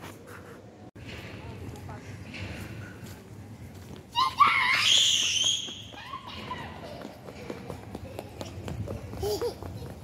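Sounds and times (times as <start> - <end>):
child screaming: 4.2 - 6.8.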